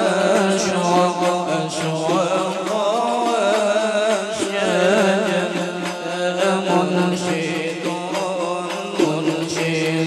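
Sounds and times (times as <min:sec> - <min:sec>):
men singing devotional song: 0:00.0 - 0:10.0.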